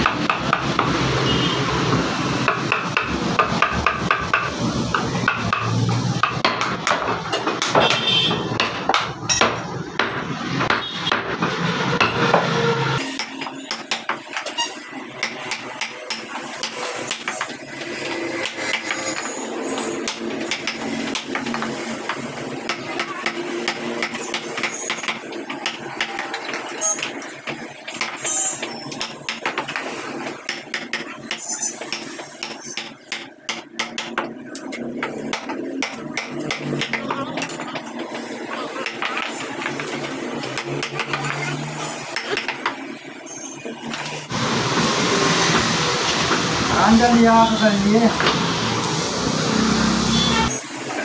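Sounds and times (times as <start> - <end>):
mallet tapping a chisel into wood: 20.1 - 26.2.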